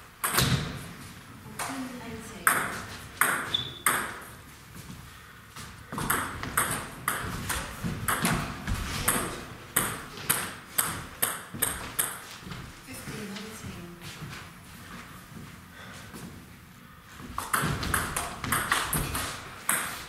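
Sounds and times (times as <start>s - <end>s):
table tennis ball clicking: 17.4s - 20.0s.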